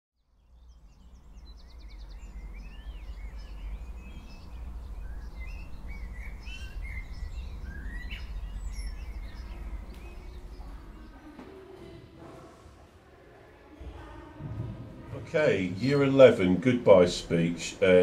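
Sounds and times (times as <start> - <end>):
birds chirping and singing: 0.2 - 11.5
steady low rumble: 0.8 - 11.2.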